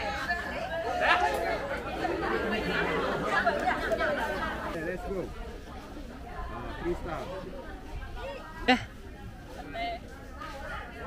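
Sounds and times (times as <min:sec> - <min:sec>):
many people chattering: 0:00.0 - 0:11.0.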